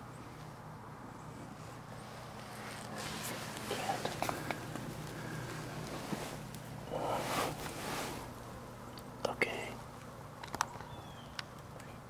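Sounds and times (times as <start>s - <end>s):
hushed whispering: 3.6s - 5.5s, 6.8s - 7.8s, 9.2s - 9.8s.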